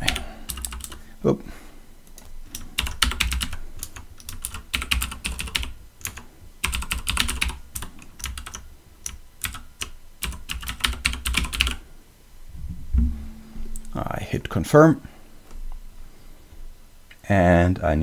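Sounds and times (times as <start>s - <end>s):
typing on computer keyboard: 0.0s - 1.0s, 2.5s - 11.8s.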